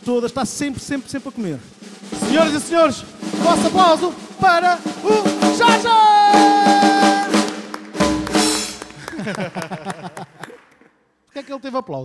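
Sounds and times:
drum kit heavy hits: 1.7s - 9.3s
hand claps: 7.0s - 11.0s
people laughing: 8.8s - 10.7s.

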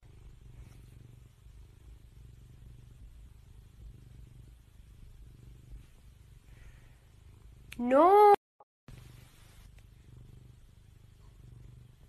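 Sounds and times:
cat purring: 0.0s - 8.2s, 8.9s - 12.0s.

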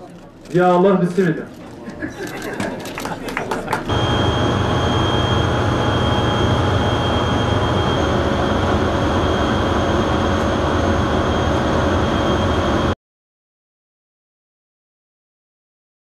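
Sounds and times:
industrial machinery hum: 3.6s - 13.0s
high machine whine: 3.9s - 13.0s.

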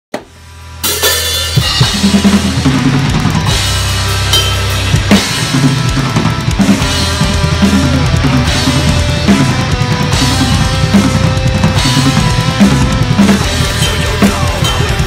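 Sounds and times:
drum kit played hard: 0.2s - 15.0s
metal band recording: 0.2s - 15.0s.

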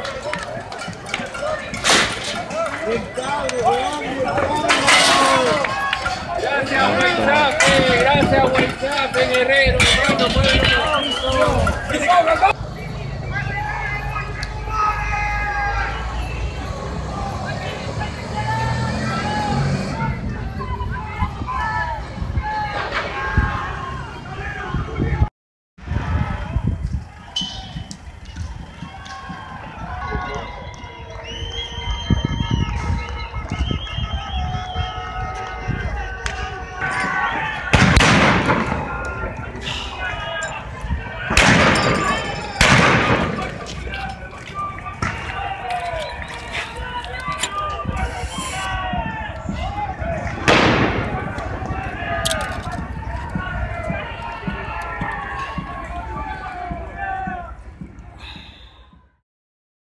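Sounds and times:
wind rumble: 0.0s - 12.5s, 18.7s - 58.2s
people's voices: 0.0s - 25.3s, 25.9s - 59.0s
distant crowd shouting: 0.0s - 59.2s
street noise: 0.0s - 59.2s.

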